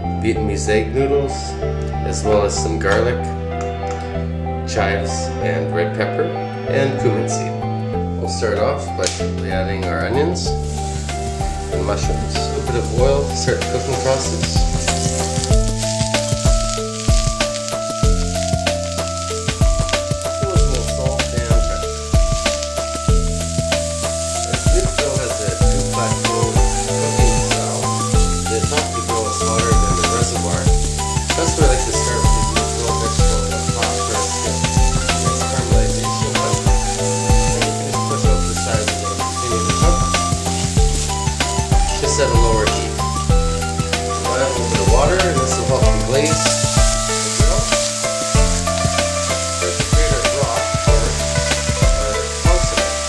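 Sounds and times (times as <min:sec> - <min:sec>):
background music with bass: 0:00.0 - 0:53.0
vegetables sizzling in oil: 0:09.9 - 0:53.0.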